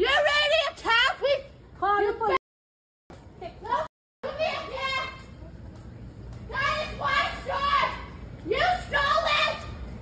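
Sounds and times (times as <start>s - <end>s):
low background noise: 3.1s - 10.0s.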